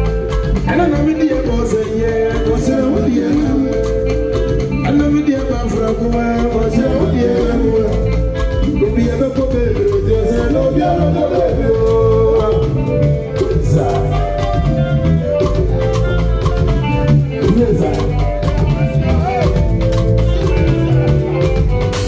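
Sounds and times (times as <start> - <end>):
drum kit: 0.0 - 22.0
electric guitar: 0.0 - 22.0
hand drums: 0.0 - 22.0
live band through pa: 0.0 - 22.0
person singing: 0.0 - 22.0.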